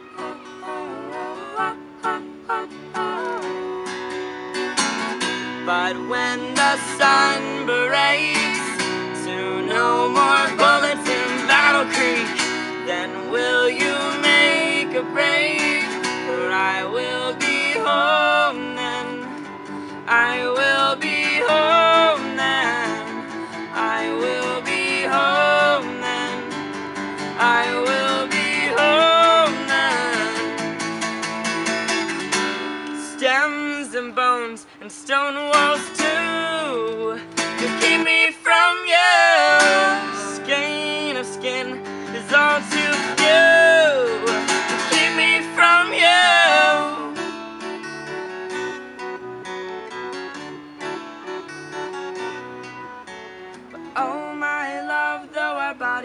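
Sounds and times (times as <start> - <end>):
voices singing: 0.0 - 4.0, 5.6 - 30.8, 33.0 - 47.4, 53.9 - 56.0
acoustic guitar strumming: 0.0 - 56.0.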